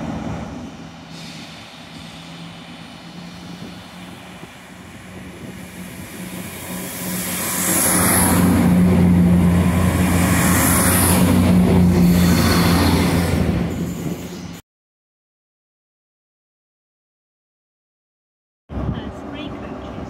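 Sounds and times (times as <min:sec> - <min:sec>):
passing train rumble: 0:00.0 - 0:14.6, 0:18.7 - 0:20.0.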